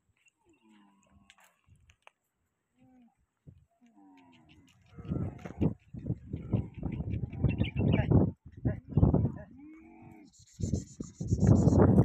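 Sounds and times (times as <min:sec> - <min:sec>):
camels grunting: 0:03.8 - 0:08.1, 0:09.5 - 0:10.4.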